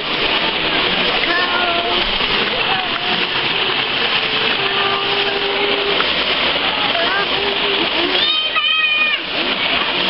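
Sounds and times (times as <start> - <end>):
faint voices: 0.0 - 10.0
stream water flowing: 0.0 - 10.0.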